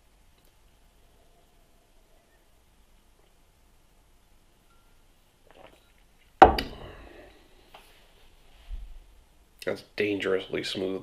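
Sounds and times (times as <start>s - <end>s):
glass knocking on wooden table: 6.4s - 6.7s.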